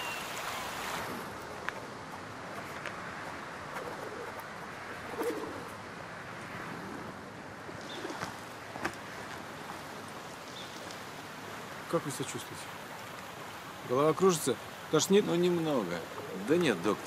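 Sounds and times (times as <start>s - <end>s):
outdoor ambient hiss: 0.0s - 17.0s
pigeons cooing: 3.7s - 5.8s, 7.8s - 8.4s, 16.0s - 17.0s.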